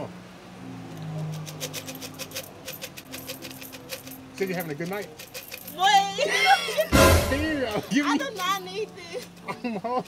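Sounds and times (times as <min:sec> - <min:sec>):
coins clinking into hands: 0:01.3 - 0:06.9
background music: 0:01.4 - 0:10.0.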